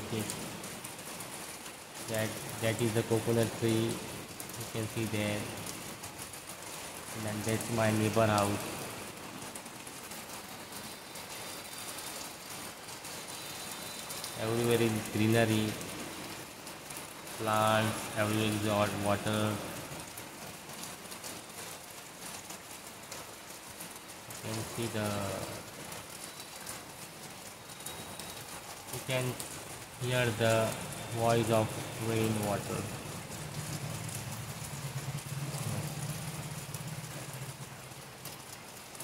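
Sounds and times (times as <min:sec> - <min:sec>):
steady rain on foliage: 0:00.0 - 0:39.0.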